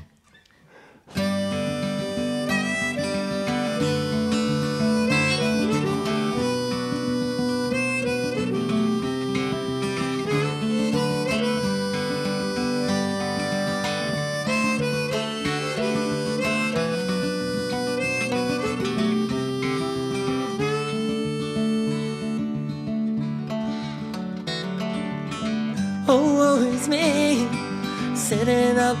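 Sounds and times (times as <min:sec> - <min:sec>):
harmonica bending notes: 0:00.0 - 0:29.0
acoustic guitars strummed: 0:01.1 - 0:29.0.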